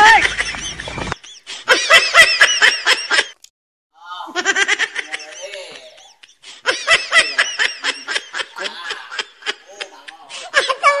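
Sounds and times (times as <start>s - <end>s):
person laughing: 4.3s - 11.0s.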